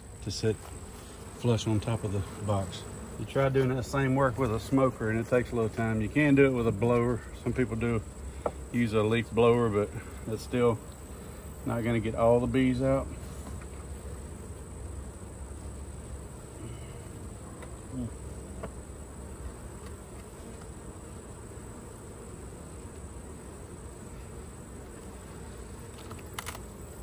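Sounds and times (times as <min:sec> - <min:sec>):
honey bees buzzing: 0:00.0 - 0:27.0.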